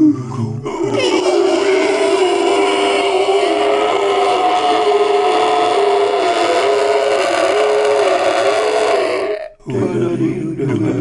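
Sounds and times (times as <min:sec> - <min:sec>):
person droning a steady tone: 0:00.0 - 0:10.9.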